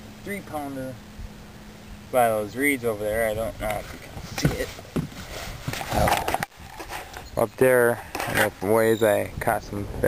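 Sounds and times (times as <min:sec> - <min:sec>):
camera handling rustle: 0:03.7 - 0:07.3, 0:08.0 - 0:08.7
footsteps on boat deck: 0:03.8 - 0:06.4.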